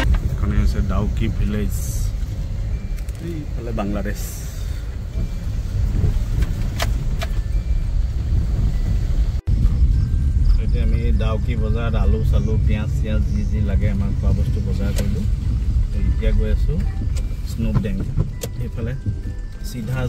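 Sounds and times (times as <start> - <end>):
car engine and tyres rumble: 0.0 - 20.0.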